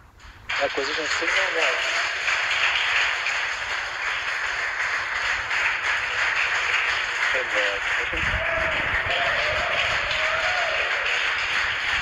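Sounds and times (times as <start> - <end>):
radio static hiss: 0.0 - 1.9.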